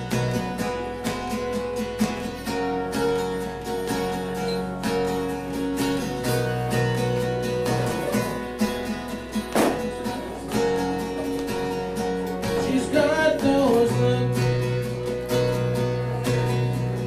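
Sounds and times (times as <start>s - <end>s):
acoustic guitar strumming: 0.0s - 17.0s.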